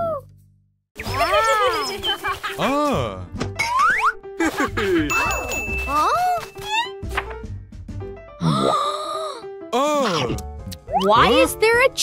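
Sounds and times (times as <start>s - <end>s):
bouncy cartoon music: 1.0s - 8.8s, 9.4s - 12.0s.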